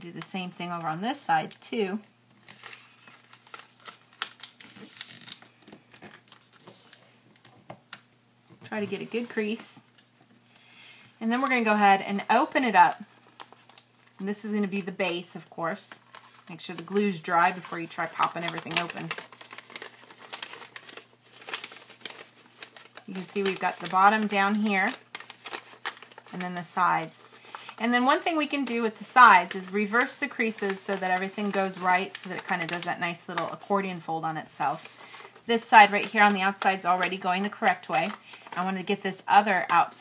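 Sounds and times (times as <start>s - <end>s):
paper rustling and crinkling: 2.4s - 7.7s, 12.2s - 15.2s, 15.9s - 33.8s, 34.6s - 38.9s.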